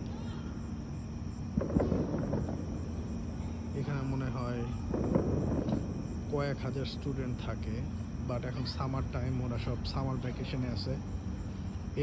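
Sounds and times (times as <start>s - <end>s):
irregular rumbling noise: 0.0s - 12.0s
steady low outdoor hum: 0.0s - 12.0s.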